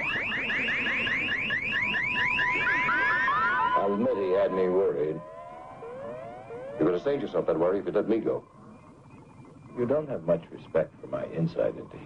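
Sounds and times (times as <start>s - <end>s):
low wavering electronic tone: 0.0s - 7.2s
rising whooping electronic sweeps: 0.0s - 7.2s
steady high electronic tone: 0.0s - 8.0s.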